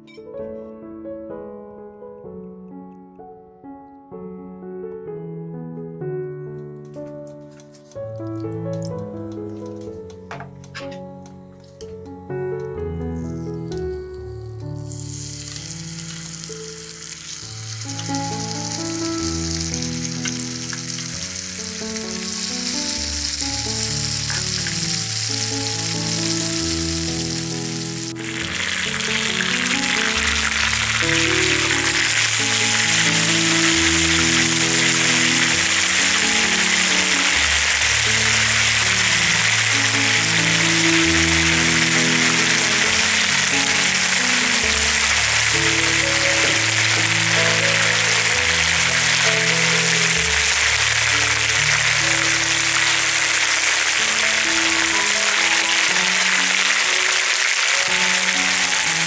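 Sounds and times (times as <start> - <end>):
background music: 0.0 - 59.0
chicken sizzling in a pan: 13.2 - 59.0.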